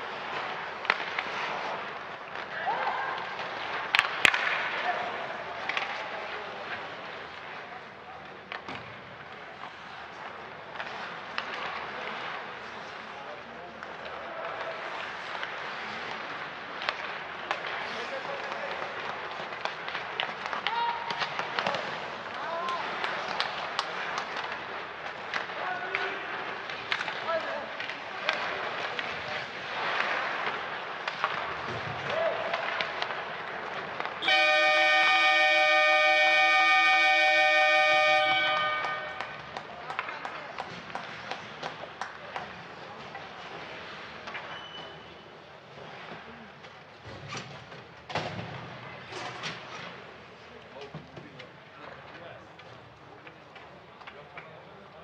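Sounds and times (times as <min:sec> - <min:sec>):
hockey sticks puck and skates: 0:00.0 - 0:55.0
arena horn: 0:34.2 - 0:39.4.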